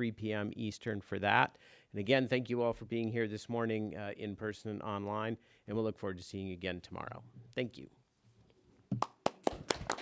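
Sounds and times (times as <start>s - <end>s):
people clapping: 9.0s - 10.0s.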